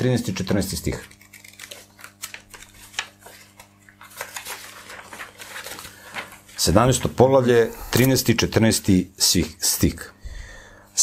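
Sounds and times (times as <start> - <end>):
pages flicking and rustling: 0.8 - 7.4.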